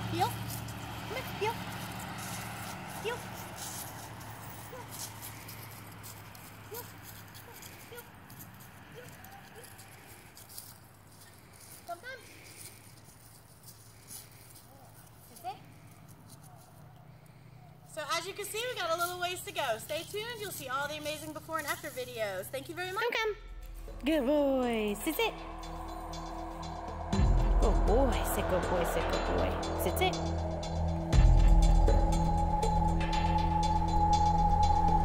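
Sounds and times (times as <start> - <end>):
footsteps in dry leaves: 0.0 - 16.9
low vehicle hum: 0.0 - 35.0.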